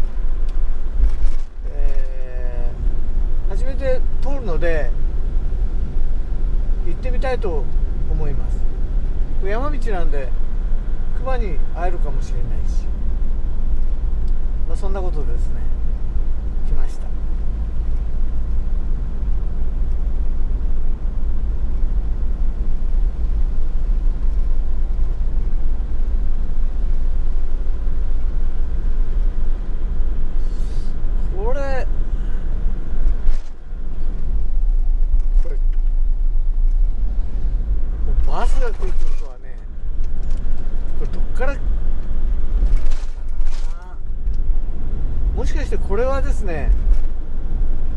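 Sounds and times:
tyres on wet road: 0.0s - 47.9s
van engine rumble: 0.0s - 47.9s.

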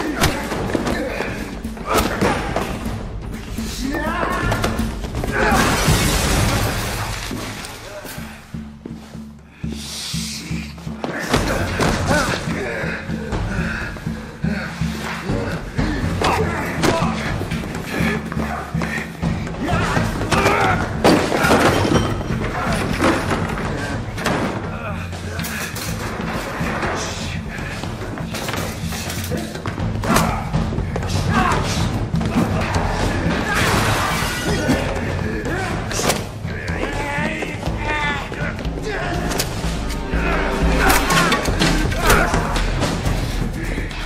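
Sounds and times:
men grunting and shouting: 0.0s - 6.6s, 10.1s - 44.0s
film score music: 0.0s - 44.0s.

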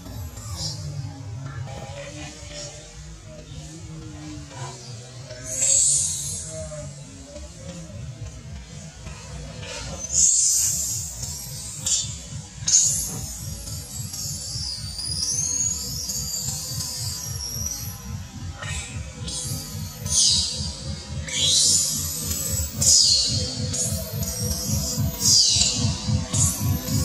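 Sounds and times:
background music with steady beat: 0.0s - 27.0s.

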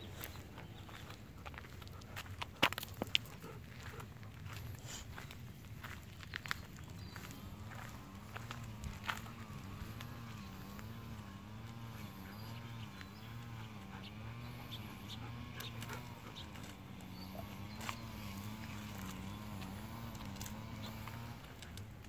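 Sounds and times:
wavering low hum: 0.0s - 22.0s.

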